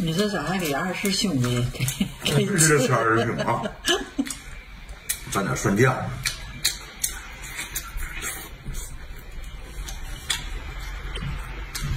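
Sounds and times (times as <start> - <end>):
man chewing with wet smacks: 4.2 - 11.9.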